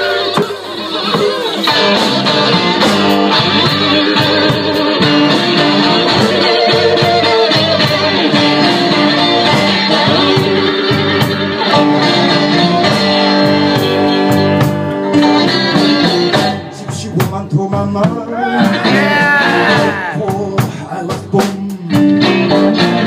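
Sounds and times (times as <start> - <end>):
electric guitar lead: 0.0 - 17.3, 18.1 - 20.8, 21.4 - 23.0
blues band playing: 0.0 - 23.0
steady drum beat: 0.0 - 23.0.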